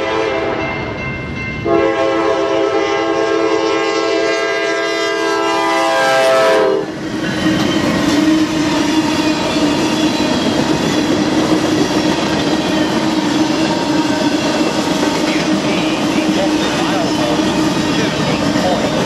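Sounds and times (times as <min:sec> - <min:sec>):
locomotive air horn: 0:00.0 - 0:00.6, 0:01.6 - 0:06.9
train wheels rumbling on rails: 0:06.3 - 0:19.0.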